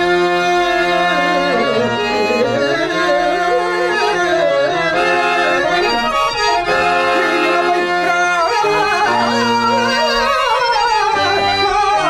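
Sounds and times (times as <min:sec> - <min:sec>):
harmonium melody: 0:00.0 - 0:12.0.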